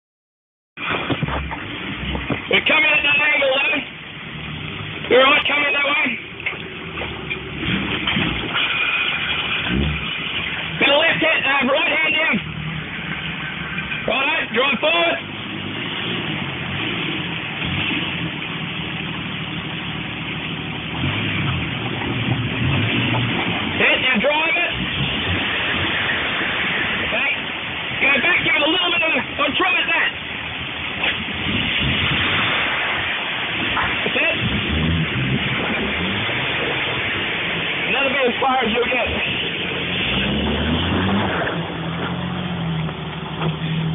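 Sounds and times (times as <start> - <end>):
engine running at low revs: 0.8 - 43.9
rushing water: 0.8 - 43.9
man calling out: 14.1 - 15.2.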